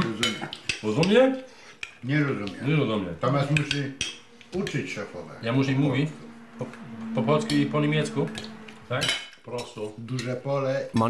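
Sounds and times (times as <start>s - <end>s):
cutlery and dishes clinking: 0.0s - 4.8s, 7.3s - 11.0s
voices: 2.0s - 11.0s.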